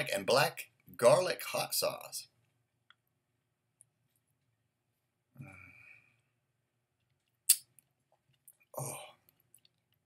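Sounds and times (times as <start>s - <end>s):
lip smack: 7.4s - 7.8s.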